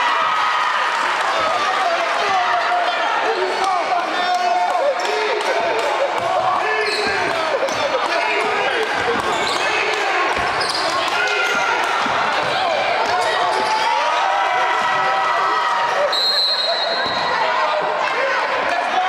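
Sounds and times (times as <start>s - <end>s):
voices calling out and chattering: 0.0s - 19.0s.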